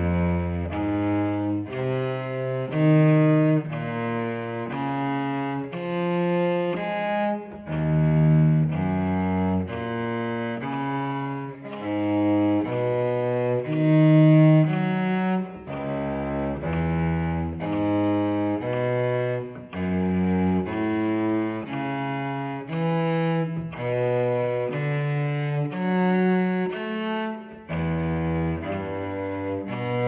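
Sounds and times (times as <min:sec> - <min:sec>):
cello bowing arpeggios: 0:00.0 - 0:30.0.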